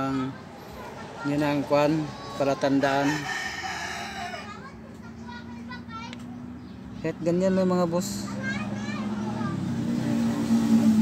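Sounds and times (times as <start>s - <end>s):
rooster crowing: 2.9s - 4.6s.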